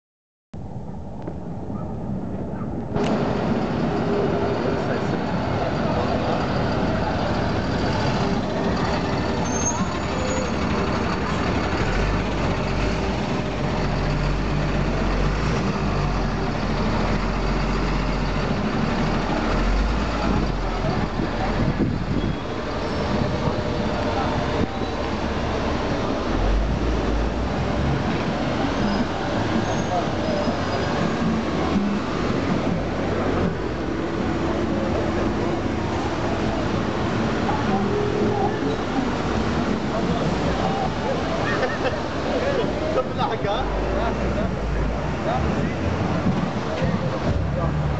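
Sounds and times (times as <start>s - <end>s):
diesel truck engine: 2.8s - 47.9s
crowd voices: 3.0s - 47.9s.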